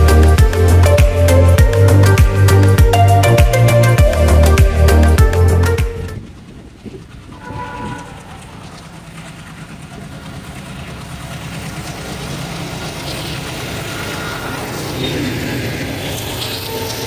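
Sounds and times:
diesel locomotive engine rumble: 0.0s - 17.0s.

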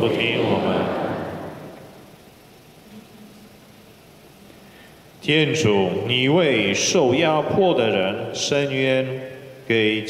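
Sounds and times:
spoken prayer in reverberant church: 0.0s - 2.1s, 5.2s - 10.0s.

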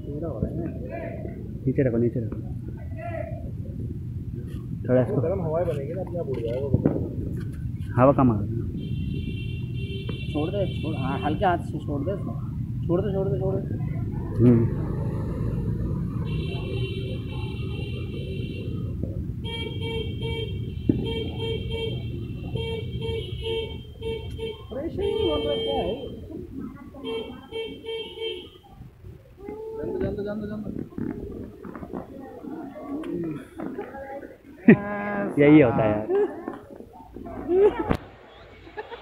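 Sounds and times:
steady low rumble: 0.0s - 8.8s
voices talking: 0.0s - 39.0s
horn sounding: 16.2s - 26.4s.

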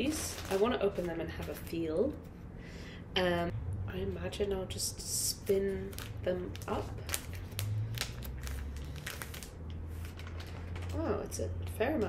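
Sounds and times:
plastic bag crinkling: 0.0s - 1.8s, 5.5s - 11.1s.

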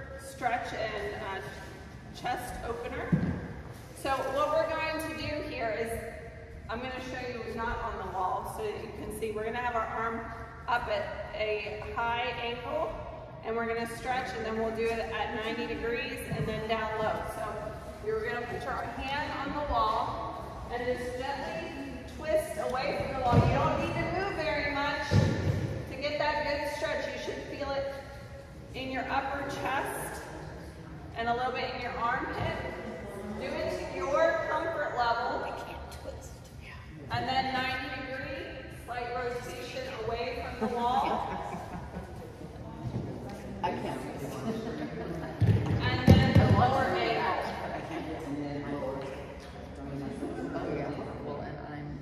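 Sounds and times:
people talking: 0.0s - 3.2s, 4.0s - 6.0s, 6.7s - 28.0s, 28.8s - 30.3s, 31.1s - 52.0s.

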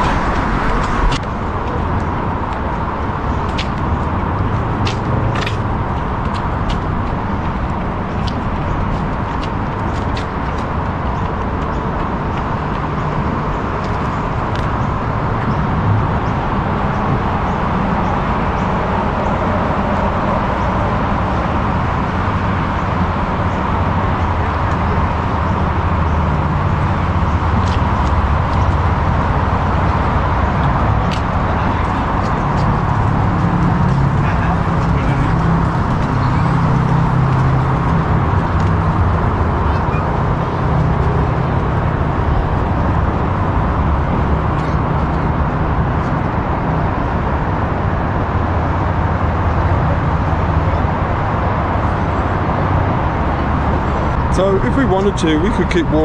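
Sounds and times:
low rumble of road traffic: 0.0s - 56.0s.

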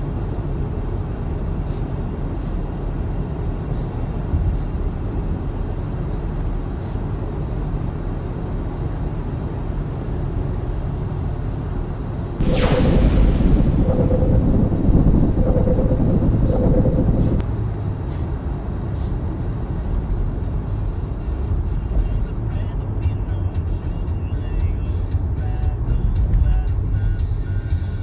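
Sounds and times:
road rumble inside car: 0.0s - 12.4s, 16.0s - 28.0s.

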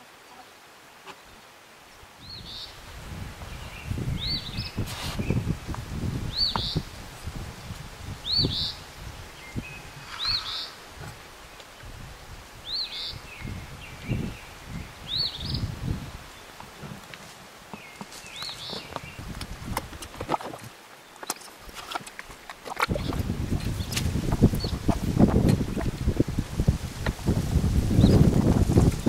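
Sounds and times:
small bird calling: 8.3s - 11.6s.

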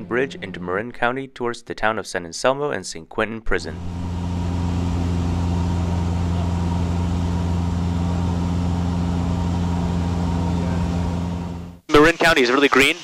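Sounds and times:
airplane engine droning: 3.7s - 11.8s.

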